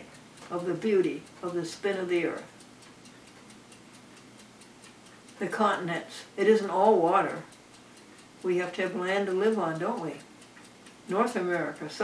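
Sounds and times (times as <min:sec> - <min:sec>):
small clock ticking rapidly: 0:00.0 - 0:12.0.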